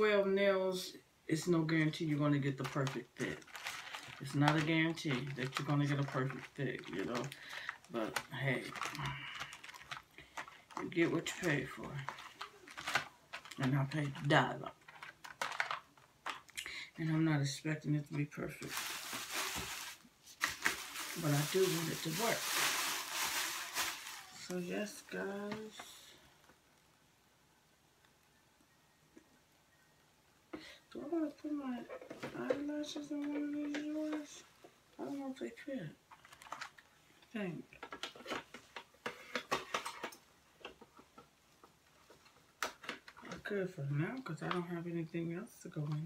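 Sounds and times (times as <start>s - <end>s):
plastic bag rustling: 1.9s - 16.5s, 18.3s - 26.2s.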